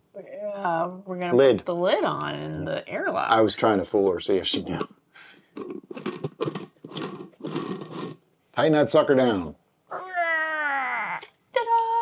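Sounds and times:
jar lid scraping on threads: 5.5s - 8.2s.

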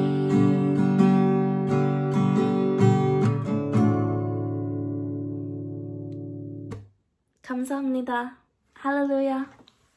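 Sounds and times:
acoustic guitar chord ringing: 0.0s - 6.9s
woman speaking: 7.4s - 9.7s.

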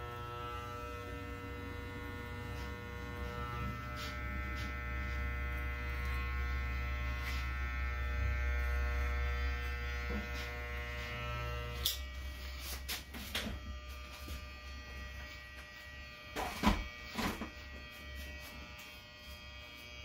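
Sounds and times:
electric hair clipper buzzing: 0.0s - 20.0s.

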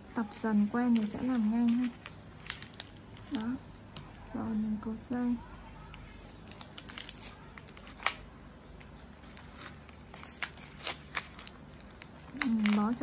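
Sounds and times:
paper wrapping rustling: 0.2s - 4.4s, 6.1s - 13.0s.

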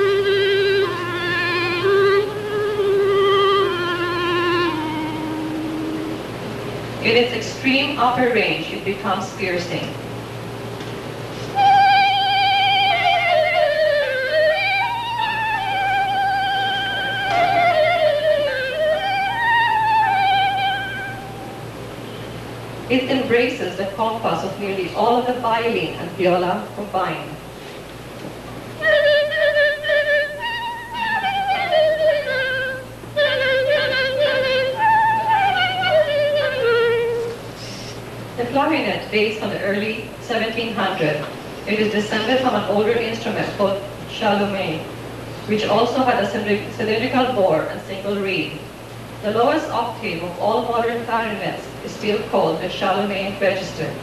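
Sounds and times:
clarinet melody with vibrato: 0.0s - 6.5s, 11.5s - 22.2s, 28.8s - 37.8s.

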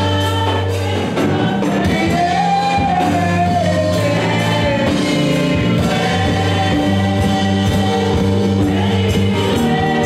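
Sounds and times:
band with drums and bass: 0.0s - 10.0s
group gospel singing: 0.0s - 10.0s.

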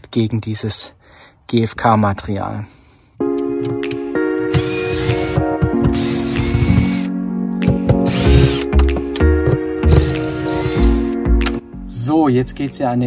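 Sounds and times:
background music: 2.8s - 13.0s
cordless drill spinning: 4.5s - 7.1s, 8.1s - 8.7s, 9.9s - 11.2s.

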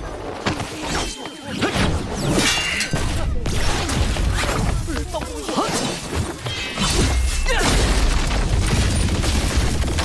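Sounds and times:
crackling shattering hits: 7.6s - 10.0s.

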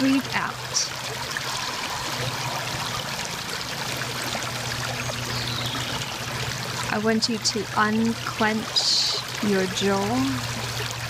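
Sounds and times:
creek running over stones: 0.0s - 11.0s.

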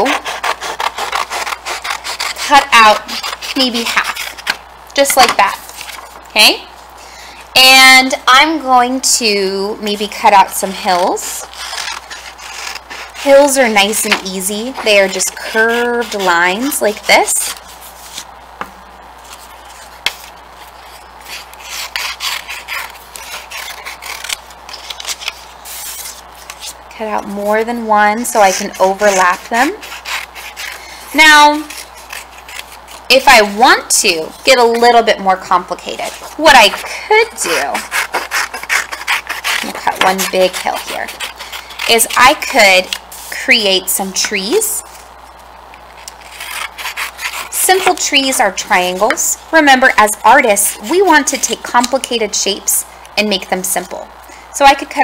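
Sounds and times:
scissors snipping paper: 0.0s - 6.0s, 10.3s - 18.2s, 20.9s - 26.7s, 27.5s - 43.0s, 46.0s - 49.3s.

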